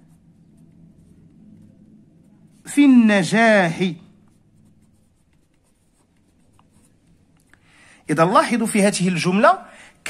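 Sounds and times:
marker scratching on paper: 0.0s - 7.4s.

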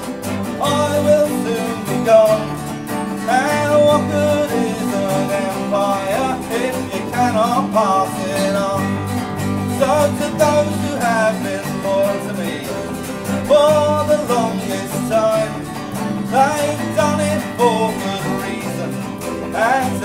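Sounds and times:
bass guitar: 0.0s - 20.0s
strummed acoustic guitar: 0.0s - 20.0s.

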